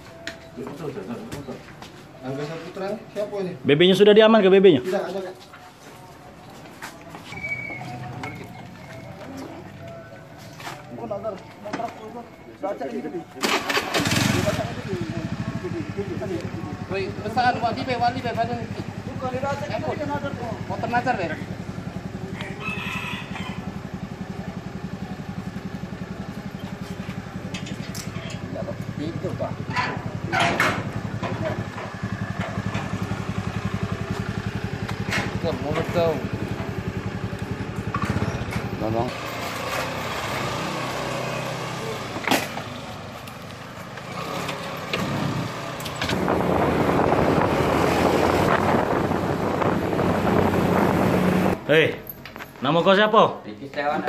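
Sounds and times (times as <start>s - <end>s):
scooter engine idling: 13.5s - 44.0s
rooster crowing: 22.1s - 24.1s.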